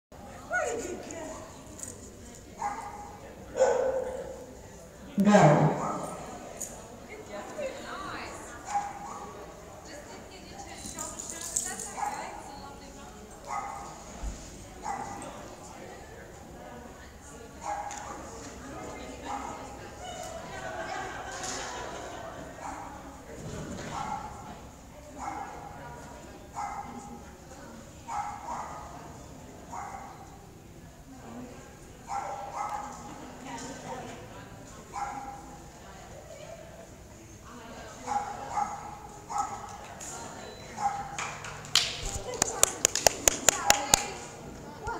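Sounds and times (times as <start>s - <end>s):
dog barking: 2.6s - 4.4s, 13.5s - 13.9s, 14.8s - 15.2s, 17.6s - 18.0s, 23.9s - 24.4s, 25.2s - 25.6s, 26.6s - 27.0s, 28.1s - 28.9s, 29.7s - 30.2s, 32.1s - 33.0s, 38.1s - 39.7s, 40.8s - 41.2s.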